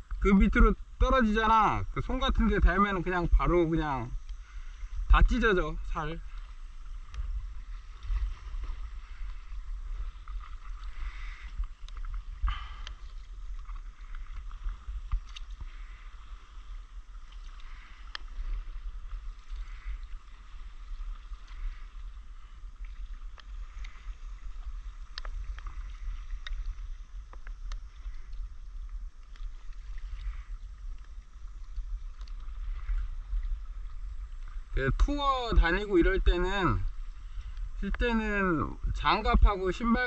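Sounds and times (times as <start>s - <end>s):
steady low rumble: 0.0s - 39.9s
paddle strokes in water: 0.0s - 40.0s
water splashing and lapping: 0.0s - 40.0s.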